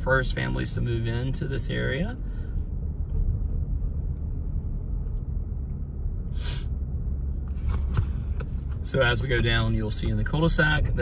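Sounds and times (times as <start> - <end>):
car driving rumble from inside: 0.0 - 11.0
brief hiss: 6.3 - 6.7.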